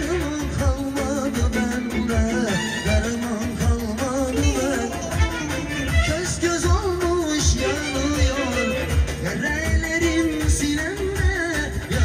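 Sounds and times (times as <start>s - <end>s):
amplified backing music with drums: 0.0s - 12.0s
man singing into a microphone: 0.0s - 12.0s.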